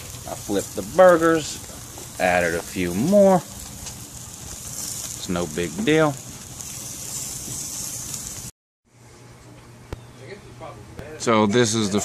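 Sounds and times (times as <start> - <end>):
food sizzling on a grill: 0.0 - 8.5.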